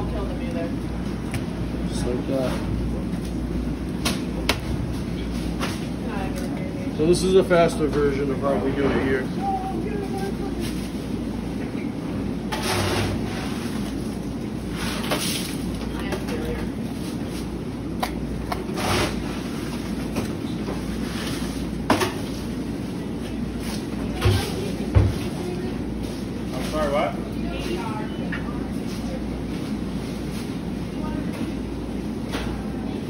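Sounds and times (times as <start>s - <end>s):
work room background noise: 0.0s - 33.0s.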